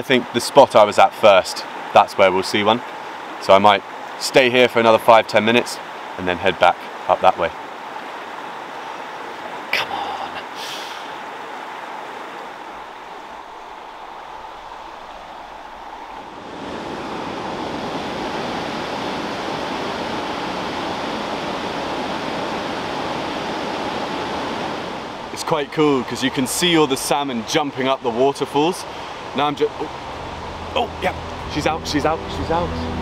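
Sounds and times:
river rushing over rocks: 0:00.0 - 0:33.0.

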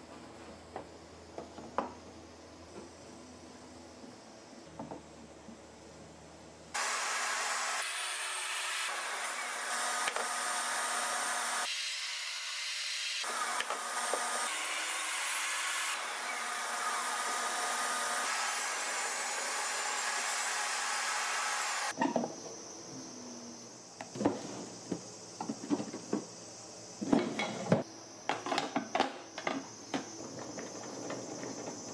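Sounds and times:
table saw cutting wood: 0:06.8 - 0:21.9.

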